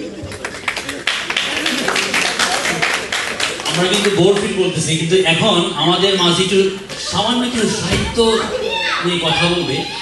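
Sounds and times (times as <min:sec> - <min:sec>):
audience applauding: 0:00.1 - 0:04.6.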